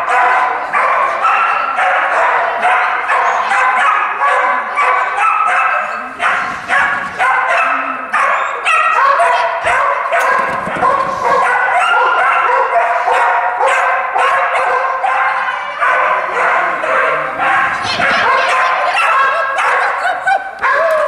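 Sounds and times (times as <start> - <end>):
dog barking: 0.0 - 21.0.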